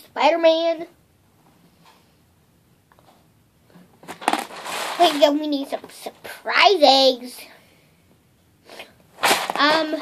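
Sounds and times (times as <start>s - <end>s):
hard plastic container rattling: 4.0s - 5.8s, 9.2s - 10.0s.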